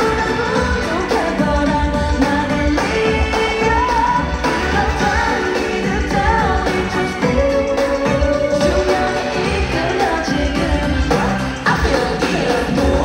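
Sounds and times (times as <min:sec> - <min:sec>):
pop backing track: 0:00.0 - 0:13.0
woman singing into microphone: 0:00.0 - 0:13.0.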